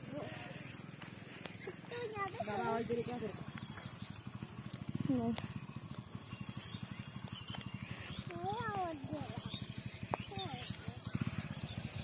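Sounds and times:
engine idling: 0.0 - 12.0.

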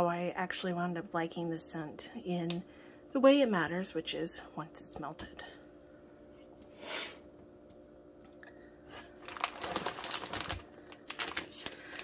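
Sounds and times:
packing peanuts rustling: 8.9 - 12.0
plastic packaging crinkling: 8.9 - 12.0.

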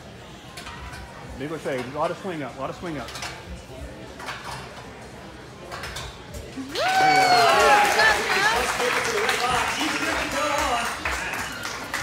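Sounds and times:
busy gym background: 0.0 - 12.0
spectator cheering: 6.7 - 8.3.

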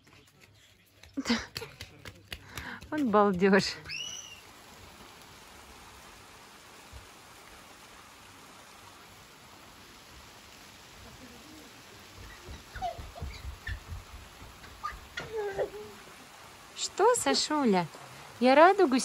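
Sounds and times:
light rain hissing: 0.0 - 19.0
faint calls: 12.0 - 16.4.

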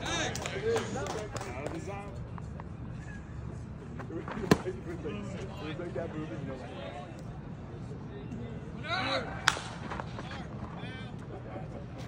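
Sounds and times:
baseball smacking into mitt: 4.3 - 4.8, 9.4 - 10.0.

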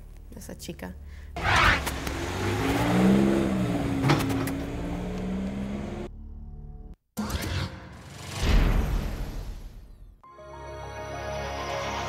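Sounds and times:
vehicle engine: 1.4 - 6.1.

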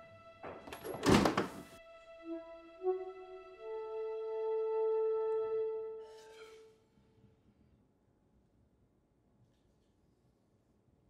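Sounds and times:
soft film score music: 0.0 - 7.8.

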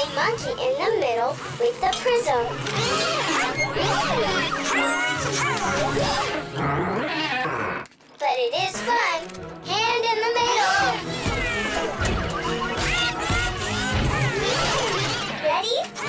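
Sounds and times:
lively background music: 0.0 - 7.2, 7.9 - 16.0.

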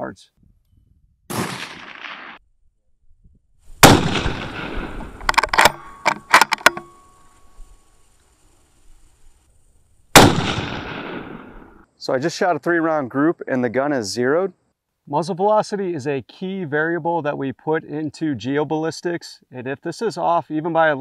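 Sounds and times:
rifle shots echoing: 1.3 - 2.4, 3.8 - 6.0, 10.1 - 11.8
rifle bolt clicks: 5.2 - 6.9.

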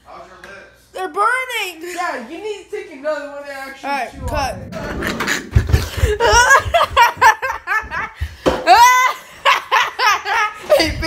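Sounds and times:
boy laughing hard: 5.1 - 11.0.

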